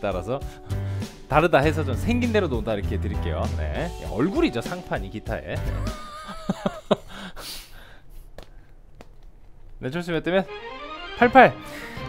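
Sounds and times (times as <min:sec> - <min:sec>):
men laughing softly: 0:05.6 - 0:07.5.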